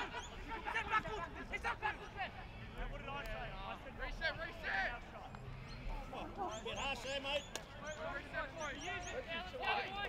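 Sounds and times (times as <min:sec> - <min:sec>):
voices calling out: 0:00.0 - 0:10.0.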